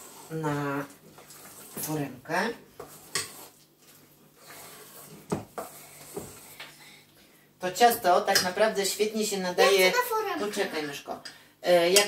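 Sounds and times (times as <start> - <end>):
spoon scraping metal bowl: 2.8 - 6.2.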